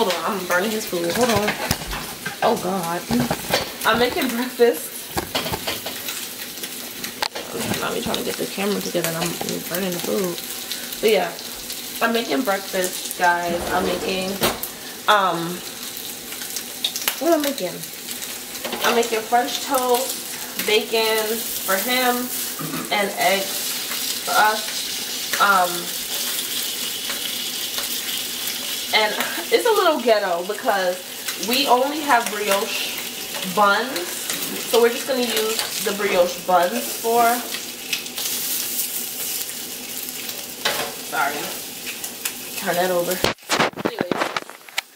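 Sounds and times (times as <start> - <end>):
meat sizzling in a pan: 0.0 - 44.9
faint crackles: 41.8 - 44.9.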